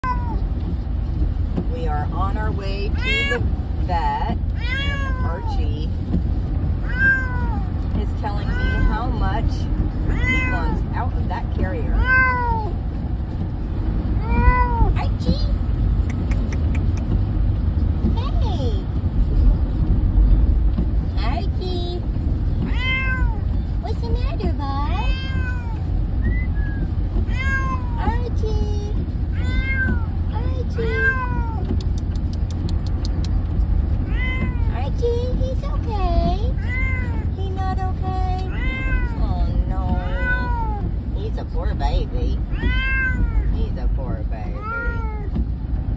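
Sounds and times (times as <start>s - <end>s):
cat meowing: 0.0s - 0.4s, 3.0s - 3.5s, 4.6s - 5.6s, 6.8s - 7.7s, 8.4s - 9.1s, 10.1s - 10.8s, 11.9s - 12.7s, 14.2s - 15.0s, 22.6s - 23.5s, 25.0s - 25.9s, 27.2s - 28.1s, 29.3s - 30.2s, 30.8s - 31.7s, 34.0s - 34.8s, 36.5s - 37.3s, 38.4s - 39.3s, 40.0s - 40.9s, 42.4s - 43.6s, 44.6s - 45.3s
car road noise rumble: 0.0s - 45.9s.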